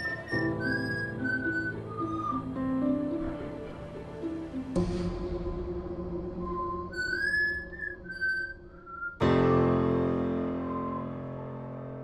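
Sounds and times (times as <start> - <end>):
whistled melody: 0.0 - 4.8, 6.1 - 12.0.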